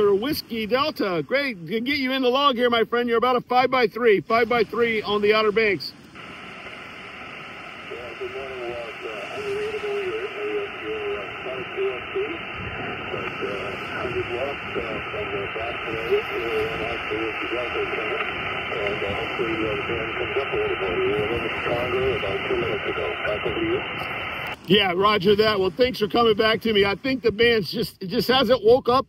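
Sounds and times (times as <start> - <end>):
radio band noise hiss: 0.0 - 29.0
weak radio voice: 7.5 - 29.0.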